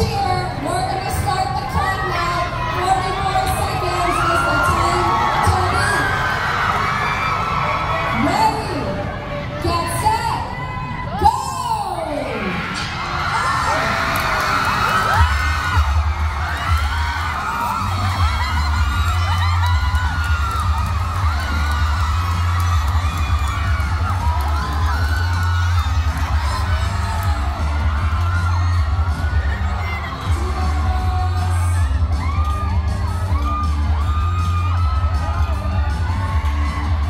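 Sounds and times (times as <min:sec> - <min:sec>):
crowd screaming and cheering: 0:00.0 - 0:37.0
bass-heavy game music: 0:15.1 - 0:37.0.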